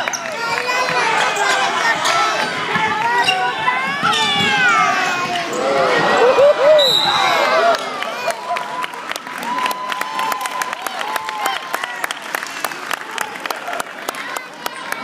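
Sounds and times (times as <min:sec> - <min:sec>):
crowd and players shouting: 0:00.0 - 0:12.2.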